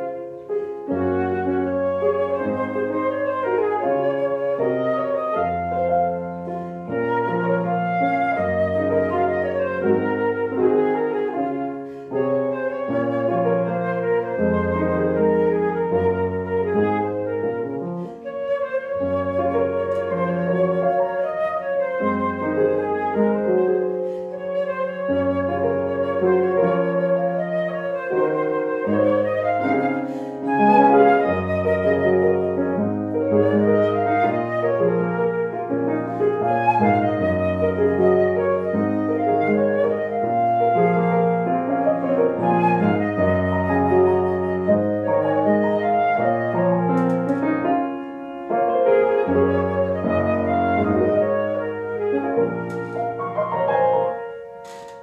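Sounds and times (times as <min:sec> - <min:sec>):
flute melody: 0:00.0 - 0:55.0
grand piano accompaniment: 0:00.0 - 0:55.0.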